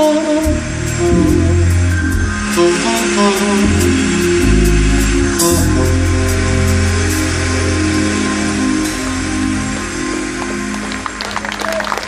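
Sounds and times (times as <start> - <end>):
band closing chord: 0.0 - 11.2
applause: 10.4 - 12.0.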